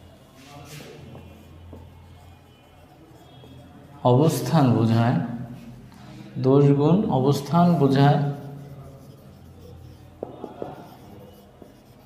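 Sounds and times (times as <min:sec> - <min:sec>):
marker writing on whiteboard: 0:00.0 - 0:05.9, 0:07.2 - 0:12.0.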